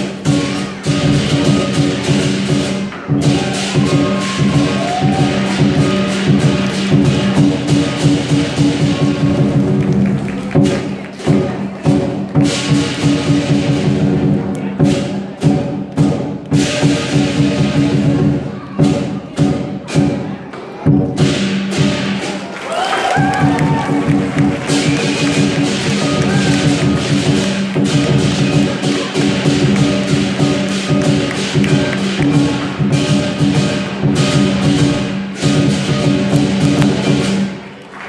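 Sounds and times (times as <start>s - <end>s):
ringing metal percussion: 0.0s - 9.4s, 24.6s - 37.6s
large drum beaten fast: 0.0s - 22.5s, 23.1s - 37.6s
cymbal crashes: 23.9s - 37.6s.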